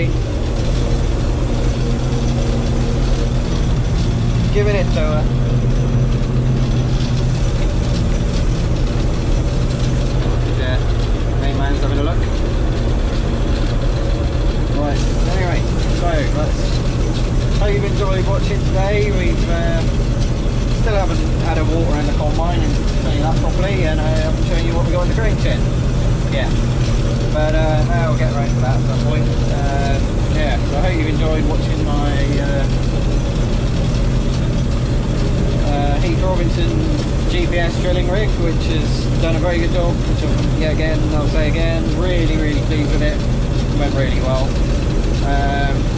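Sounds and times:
combine harvester engine hum: 0:00.0 - 0:45.9.

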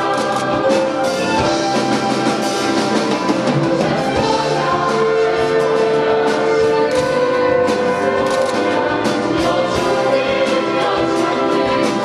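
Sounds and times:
percussion beating: 0:00.0 - 0:12.0
symphony orchestra playing: 0:00.0 - 0:12.0.

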